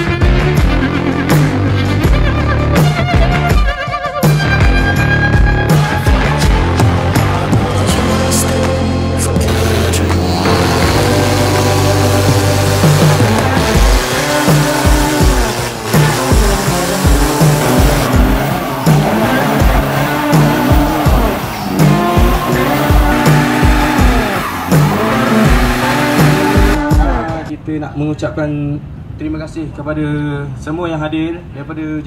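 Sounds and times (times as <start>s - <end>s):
music with steady beat: 0.0s - 27.5s
truck engines revving: 4.4s - 27.6s.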